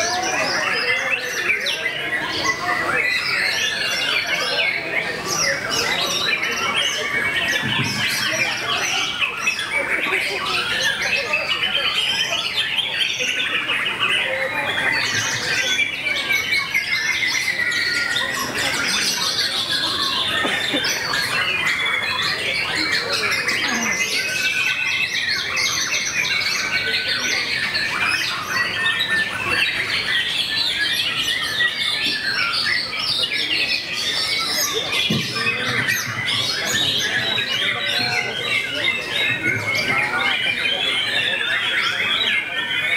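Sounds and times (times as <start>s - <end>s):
songbirds singing: 0.0s - 42.9s.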